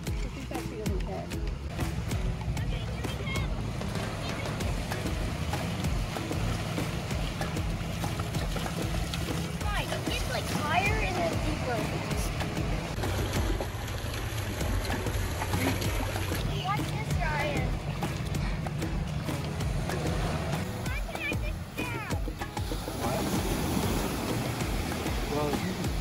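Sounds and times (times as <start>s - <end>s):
background music with bass line: 0.0s - 26.0s
water splashing in shallow surf: 0.0s - 26.0s.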